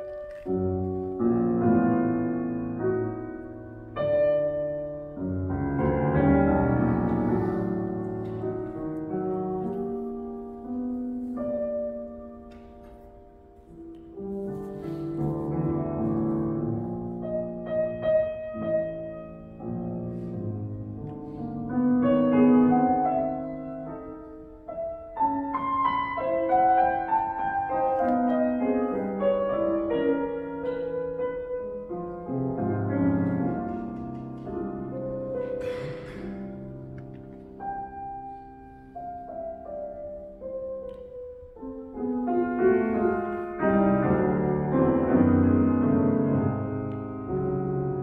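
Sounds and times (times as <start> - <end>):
grand piano playing: 0.0 - 48.0.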